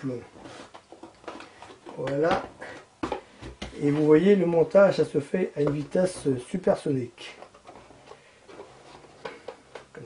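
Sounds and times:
cardboard panels tapping and clicking: 0.7 - 4.7, 5.6 - 6.5, 9.2 - 10.0.

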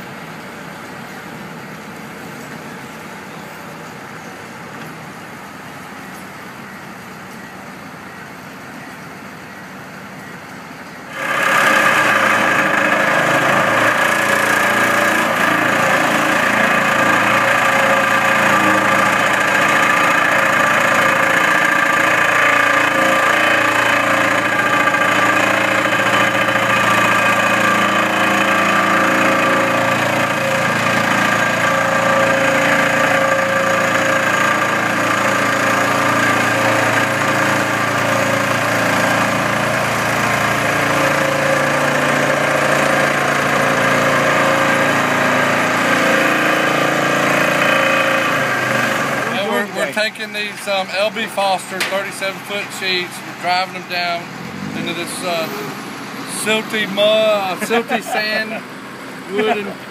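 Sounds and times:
vibratory pile driver hum and rattle: 10.0 - 59.9.

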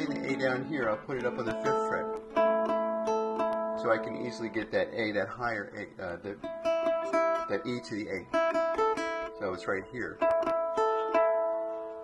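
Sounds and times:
fingerpicked guitar notes: 0.0 - 12.0.

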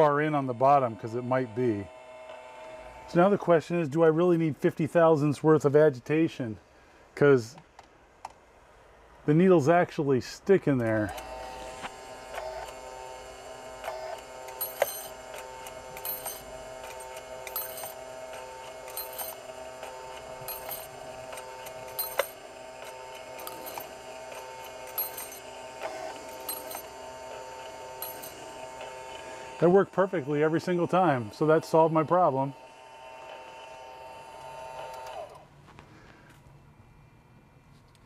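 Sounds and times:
small gear motor whirring: 0.0 - 3.4, 10.9 - 35.5
short mechanical clicks: 10.8 - 12.8, 13.8 - 29.3, 34.3 - 35.4.

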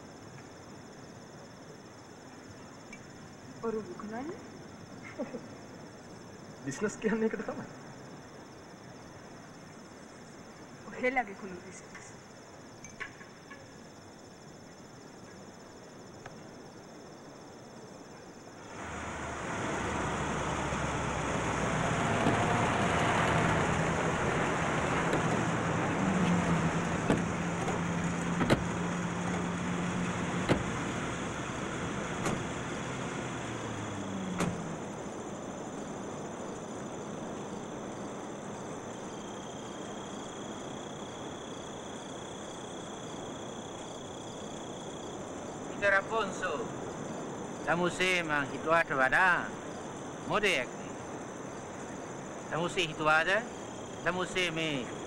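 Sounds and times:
lorry and cars engines running: 18.6 - 55.0
sharp knocks: 27.0 - 28.8.

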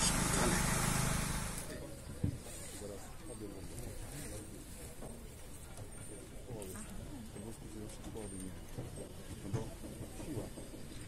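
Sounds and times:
faint conversation: 0.0 - 11.0.

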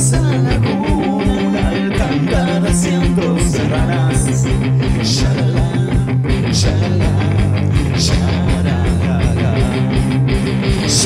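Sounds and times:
bass guitar: 0.0 - 11.0
electric guitar: 0.0 - 11.0
steady drum beat: 0.0 - 11.0.

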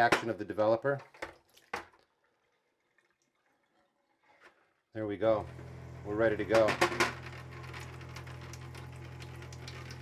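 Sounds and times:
faint water drip: 0.9 - 4.7, 8.4 - 10.0.

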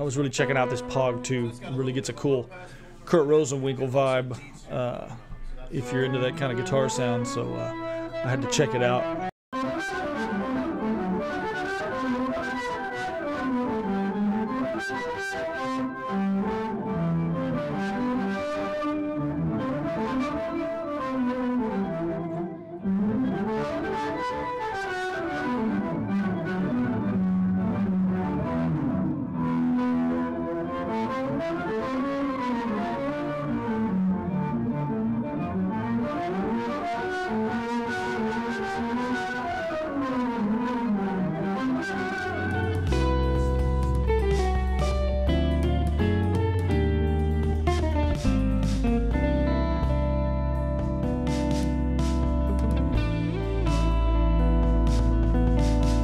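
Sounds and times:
electric guitar melody with octave effect: 4.9 - 56.0.

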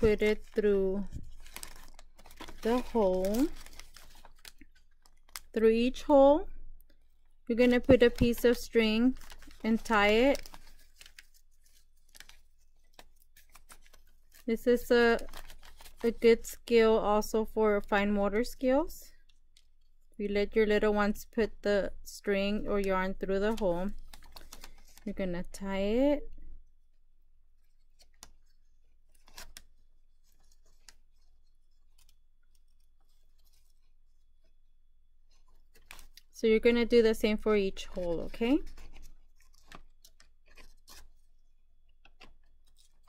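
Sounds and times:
paper bag rustling: 0.0 - 5.5.

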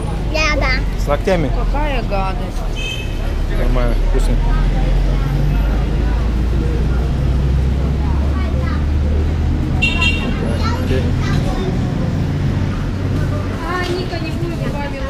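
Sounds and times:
street voices: 0.0 - 15.0.

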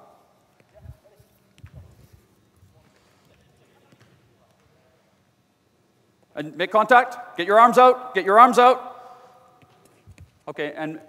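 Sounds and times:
soccer ball touches: 0.5 - 2.2, 9.6 - 10.4.

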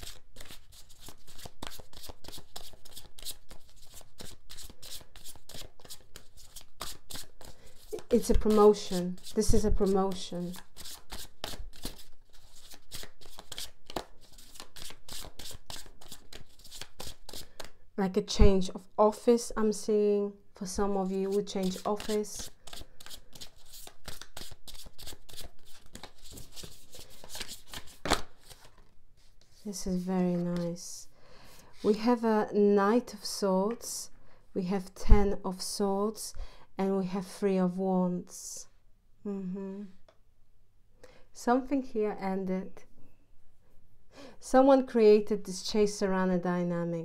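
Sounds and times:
cards being shuffled: 0.0 - 17.8, 21.0 - 30.8.

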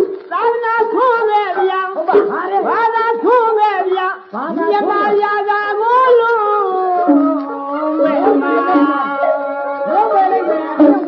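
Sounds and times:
wailing ensemble melody: 7.0 - 11.0.

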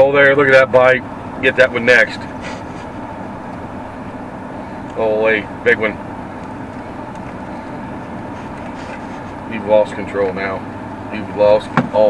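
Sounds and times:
road and engine noise in truck cab: 0.0 - 12.0.

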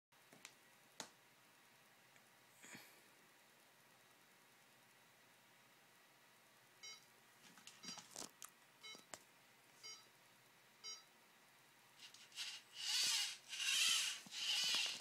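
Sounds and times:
short electronic beeps: 6.8 - 7.0, 9.8 - 10.1, 10.8 - 11.1.

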